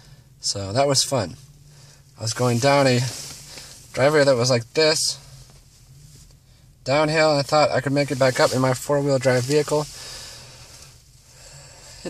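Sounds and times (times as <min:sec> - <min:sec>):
low hum in car cabin: 0:00.0 - 0:12.0
man breathing: 0:01.6 - 0:02.2, 0:03.2 - 0:03.9, 0:09.9 - 0:12.0.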